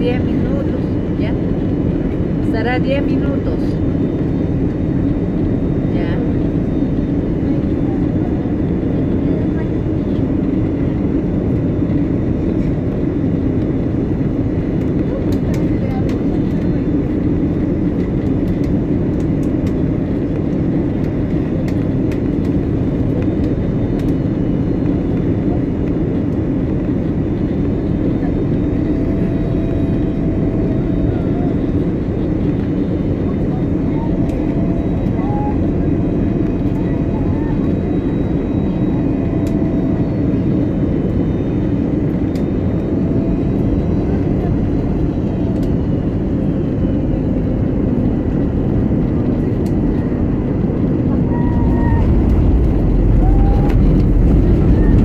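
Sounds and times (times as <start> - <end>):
airliner engines rumbling: 0.0 - 55.0
rushing air: 51.3 - 55.0.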